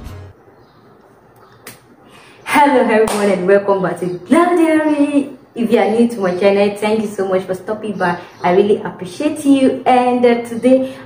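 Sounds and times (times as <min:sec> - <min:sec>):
intro music: 0:00.0 - 0:00.4.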